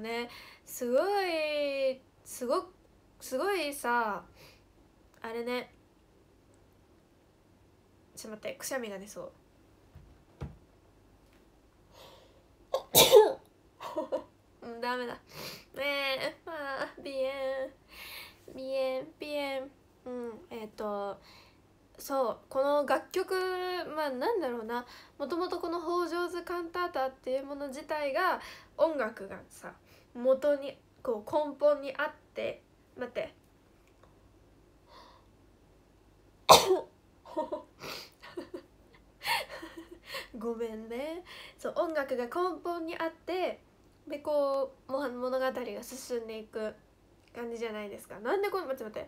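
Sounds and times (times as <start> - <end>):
woman sneezing: 12.8 - 13.4, 36.5 - 36.9
woman coughing: 12.8 - 14.1, 36.5 - 36.9.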